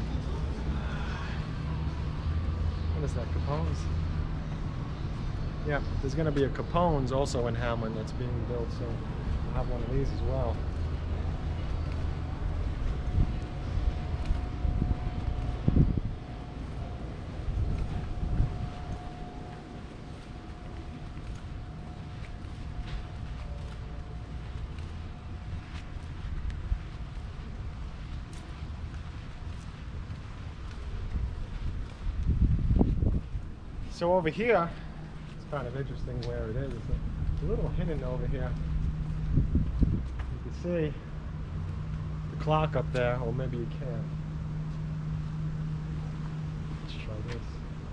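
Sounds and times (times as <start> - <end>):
faint steady hum: 0.0 - 47.9
wind buffeting microphone: 9.0 - 23.3, 24.0 - 40.5.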